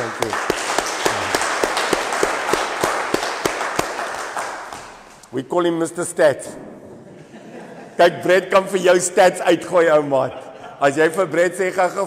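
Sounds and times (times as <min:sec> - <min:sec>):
group applauding: 0:00.0 - 0:05.2
loud single claps: 0:00.0 - 0:05.3.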